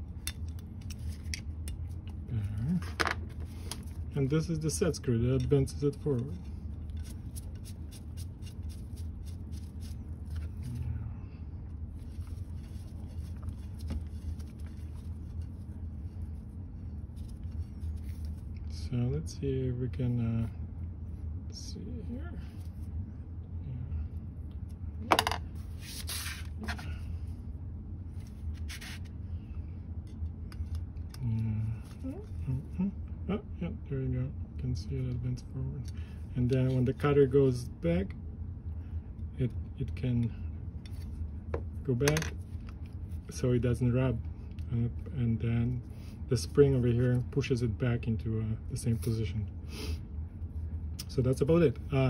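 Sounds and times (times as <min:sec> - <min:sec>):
steady low hum: 0:00.0 - 0:52.0
small handling scrapes: 0:11.9 - 0:18.5, 0:25.6 - 0:27.0, 0:28.1 - 0:29.1.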